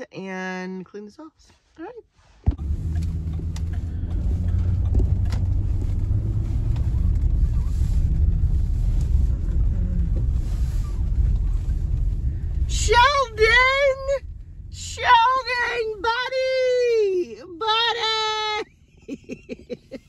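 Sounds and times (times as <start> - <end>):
car engine and road rumble: 1.2 - 20.0.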